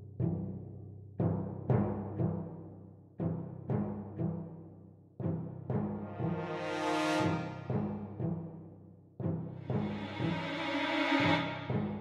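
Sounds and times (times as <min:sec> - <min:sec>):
sustained low tones: 0:09.6 - 0:12.0.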